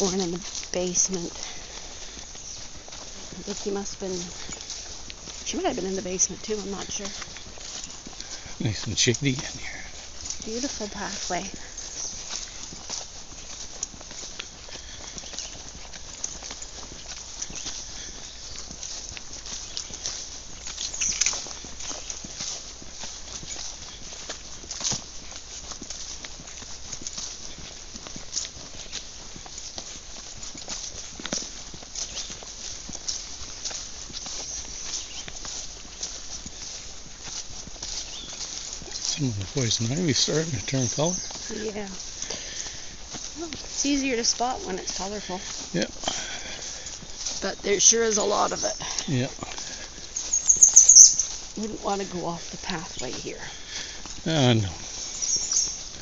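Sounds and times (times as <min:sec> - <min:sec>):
footsteps on grass: 0:00.0 - 0:56.0.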